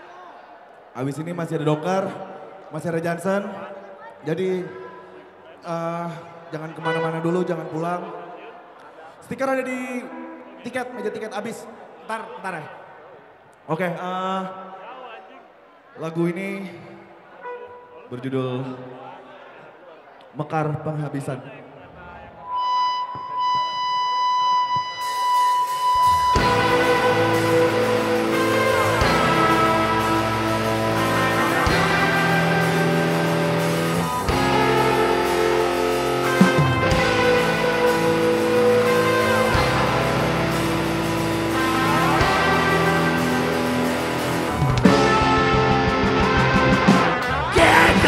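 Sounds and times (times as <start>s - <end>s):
high held guitar note: 22.5s - 46.4s
rock band playing loud: 24.5s - 48.0s.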